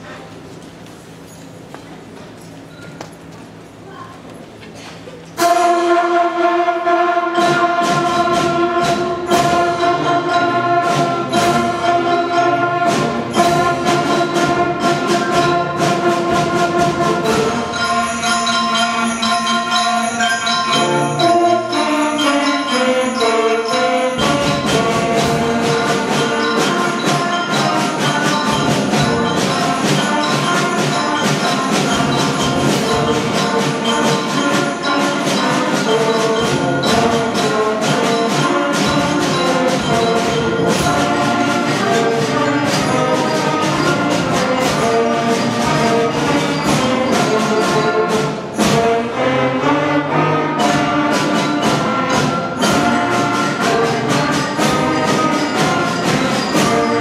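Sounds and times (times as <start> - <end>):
concert band playing: 5.4 - 57.0.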